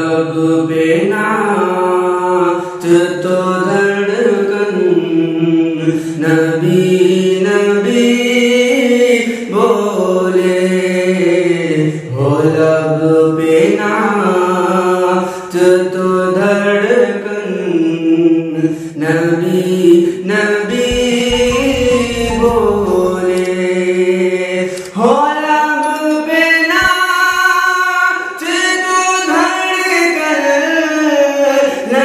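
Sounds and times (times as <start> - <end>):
man singing devotional poetry: 0.0 - 32.0.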